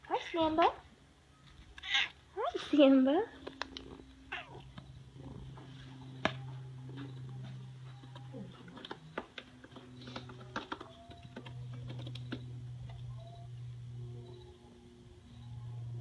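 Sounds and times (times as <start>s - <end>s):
steady low hum: 0.8s - 16.0s
cat meowing: 1.8s - 2.2s.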